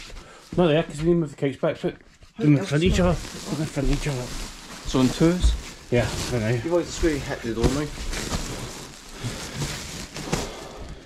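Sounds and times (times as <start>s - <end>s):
sacks of clothing rustling: 2.4s - 11.0s.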